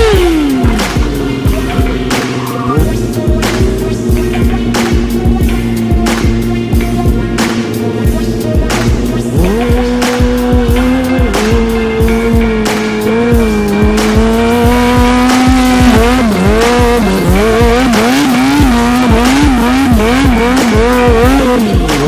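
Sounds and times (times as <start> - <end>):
motorcycle engine revving: 0.0 - 22.0
music with steady beat: 0.0 - 22.0.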